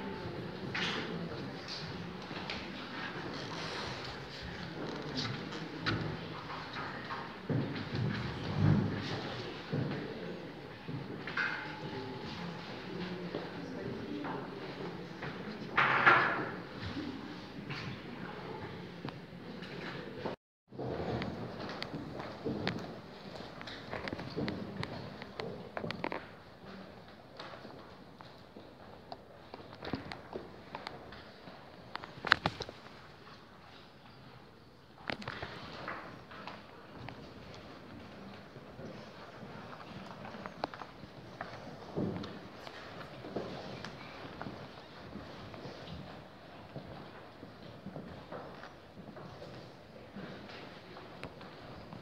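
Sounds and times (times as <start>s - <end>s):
seated audience room noise: 0.0s - 15.8s, 16.4s - 52.0s.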